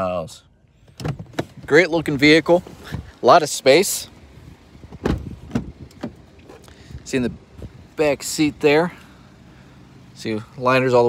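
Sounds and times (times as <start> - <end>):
car door latch knocks and clicks: 0.9 - 1.7, 4.8 - 6.3.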